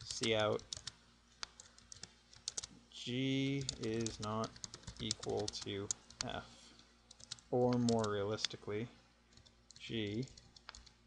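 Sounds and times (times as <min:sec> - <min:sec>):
computer keyboard clicks: 0:00.0 - 0:02.7, 0:03.6 - 0:06.3, 0:07.1 - 0:08.6, 0:09.4 - 0:11.0.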